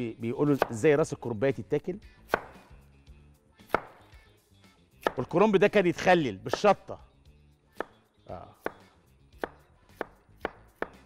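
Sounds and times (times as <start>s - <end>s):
knife chopping on cutting board: 0.5s - 0.8s, 2.3s - 2.7s, 3.6s - 4.0s, 5.0s - 5.3s, 6.5s - 6.8s, 7.8s - 8.0s, 8.6s - 11.0s.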